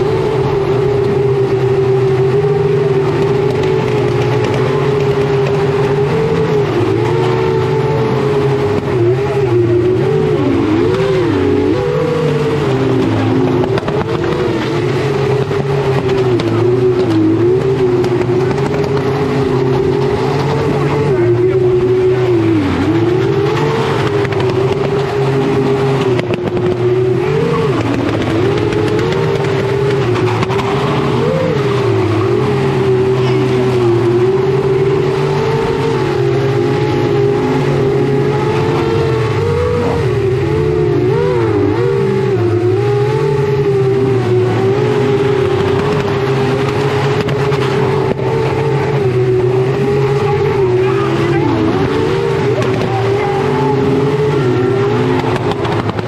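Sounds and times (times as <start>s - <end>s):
car engine revving high: 0.0s - 56.0s.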